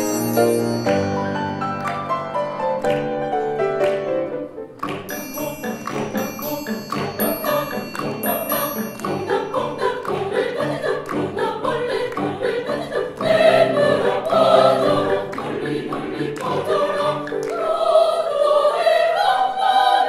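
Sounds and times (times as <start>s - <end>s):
piano accompaniment: 0.0s - 18.5s
mixed choir singing: 5.1s - 20.0s.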